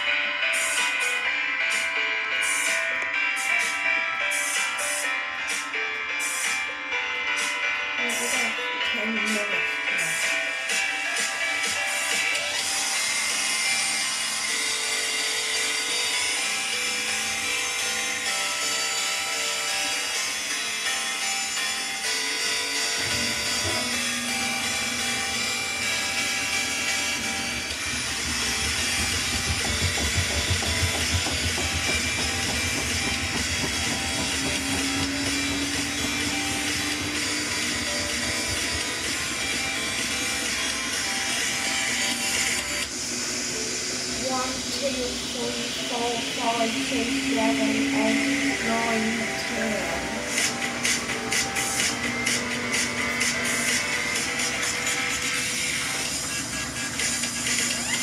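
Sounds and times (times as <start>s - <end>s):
background music: 0.0s - 58.0s
washing machine drum rumbling: 26.8s - 39.4s.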